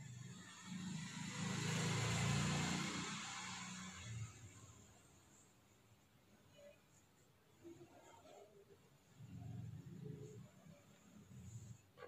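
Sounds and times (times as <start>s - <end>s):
vehicle passing by: 0.0s - 4.8s.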